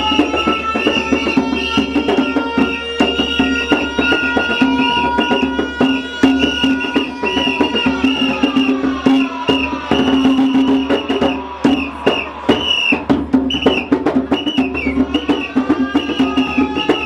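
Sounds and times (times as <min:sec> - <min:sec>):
hand drum playing fast rhythm: 0:00.0 - 0:17.0.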